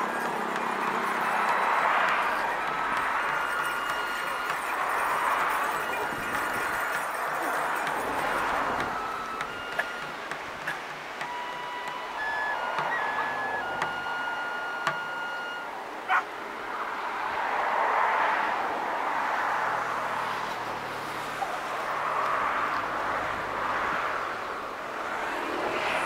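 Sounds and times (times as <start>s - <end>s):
thin whistle-like tones: 0.0s - 16.2s
wind: 0.0s - 26.0s.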